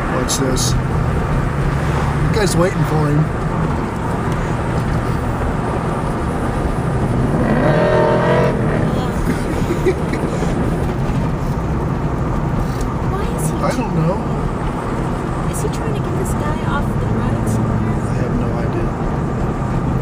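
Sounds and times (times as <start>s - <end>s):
car road and engine noise: 0.0s - 20.0s.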